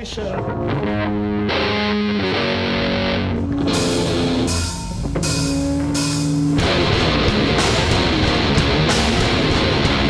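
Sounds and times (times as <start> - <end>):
distorted electric guitars and bass: 0.0 - 10.0
drum and cymbal hits: 3.7 - 10.0.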